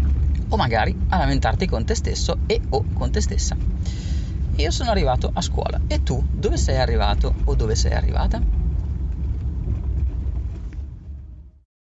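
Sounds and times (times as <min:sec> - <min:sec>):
car interior rumble: 0:00.0 - 0:11.6.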